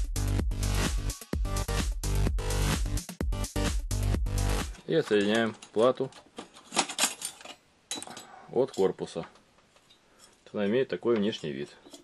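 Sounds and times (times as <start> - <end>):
metal and plastic clatter: 4.8 - 10.0, 11.1 - 12.0.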